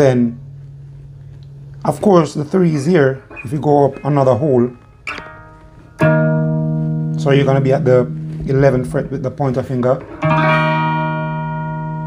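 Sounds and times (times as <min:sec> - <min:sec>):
electric guitar chords strummed: 0:00.2 - 0:12.0.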